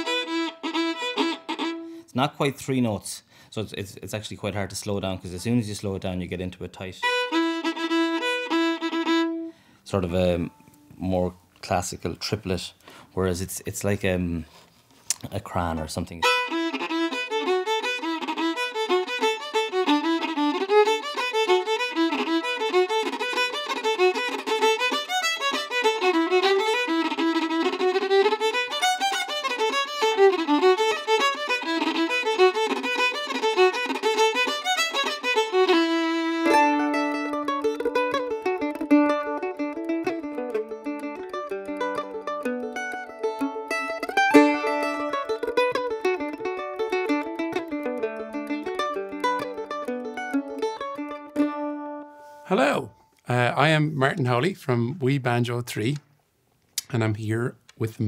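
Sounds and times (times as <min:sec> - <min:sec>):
plucked strings music: 0:00.0 - 0:02.1, 0:06.8 - 0:11.0, 0:15.6 - 0:52.7
solo fiddle playing fast tune: 0:00.0 - 0:02.2, 0:04.9 - 0:10.6, 0:15.6 - 0:53.8.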